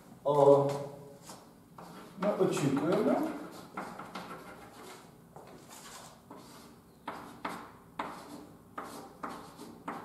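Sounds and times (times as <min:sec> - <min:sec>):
chalk scratching on blackboard: 0:01.2 - 0:10.0
chalk tapping on blackboard: 0:01.3 - 0:10.0.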